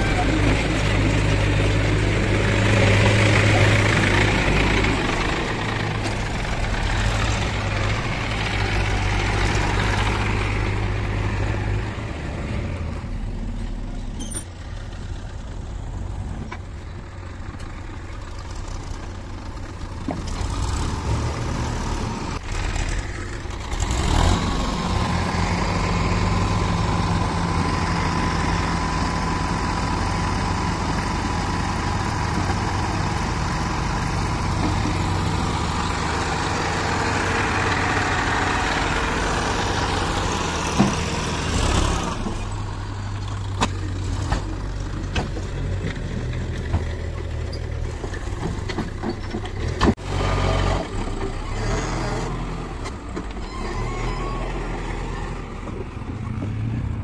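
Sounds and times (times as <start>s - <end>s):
tractor diesel engine running: 0.0s - 57.0s.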